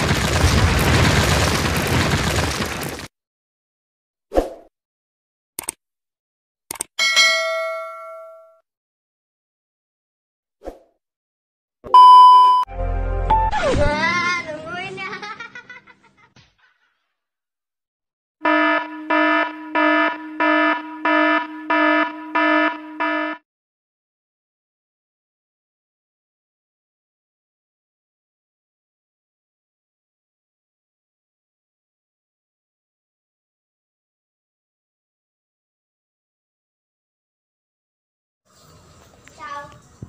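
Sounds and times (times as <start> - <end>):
pulsing warning beep: 18.5 - 23.4.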